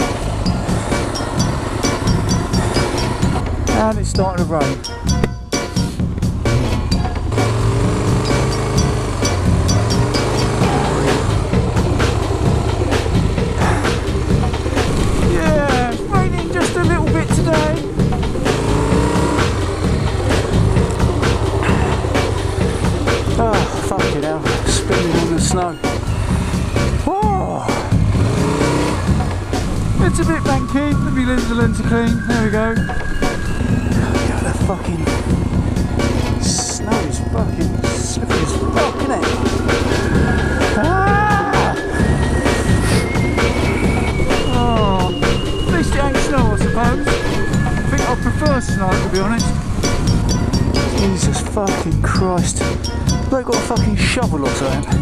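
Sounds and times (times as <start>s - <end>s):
music with singing and beat: 0.0s - 7.5s, 8.2s - 55.0s
motorcycle engine running: 0.0s - 55.0s.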